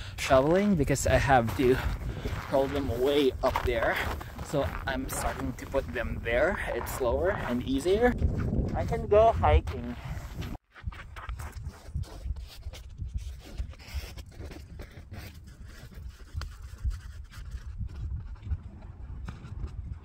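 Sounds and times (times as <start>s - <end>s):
wind rumble on microphone: 0.0s - 20.0s
footsteps crunching in snow: 1.2s - 18.4s.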